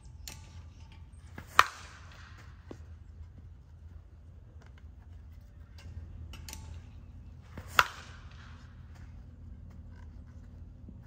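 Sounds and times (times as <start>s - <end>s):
softball bat hitting ball: 1.3s - 2.8s, 7.4s - 8.8s.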